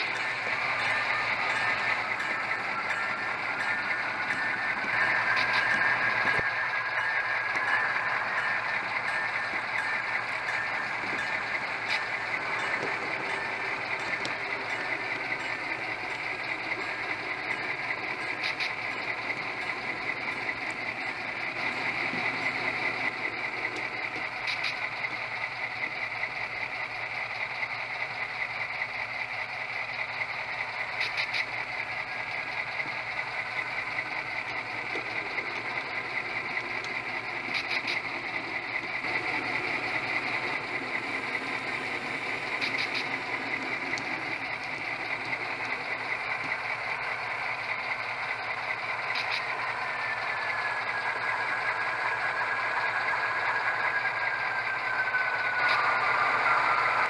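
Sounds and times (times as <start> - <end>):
diesel locomotive idling: 0.0 - 57.0
falling whine: 0.0 - 57.0.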